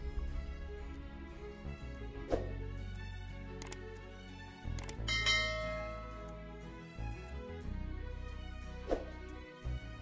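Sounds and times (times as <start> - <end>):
background music: 0.0 - 10.0
short clicks: 3.6 - 3.8, 4.7 - 5.0
bell ding: 5.1 - 6.4.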